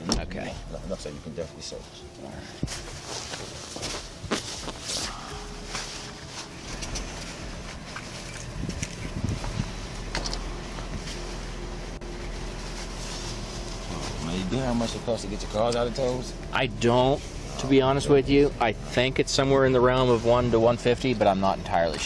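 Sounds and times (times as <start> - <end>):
idling vehicle hum: 0.0 - 22.0
camera rustling against clothing: 2.6 - 11.6.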